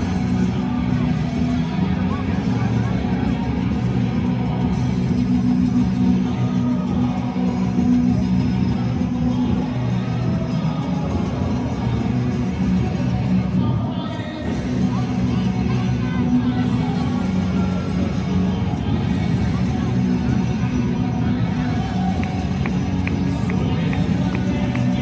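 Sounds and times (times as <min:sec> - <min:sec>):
large crowd noise: 0:00.0 - 0:25.0
music over stadium sound system: 0:00.0 - 0:25.0.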